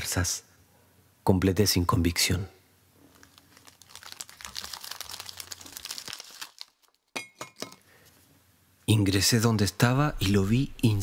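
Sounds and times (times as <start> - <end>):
packaging crinkling: 3.0 - 7.2.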